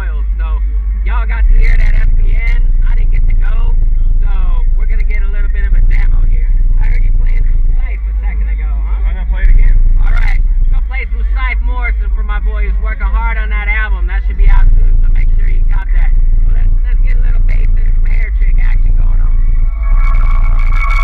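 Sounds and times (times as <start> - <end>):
deep bass notes from subwoofers: 0.0 - 21.0
voice: 0.0 - 21.0.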